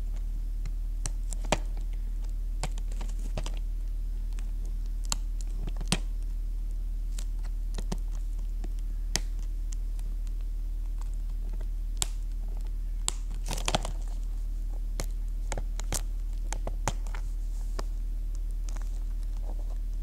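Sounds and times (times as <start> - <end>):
crinkling: 0.0 - 20.0
low electrical hum: 0.0 - 20.0.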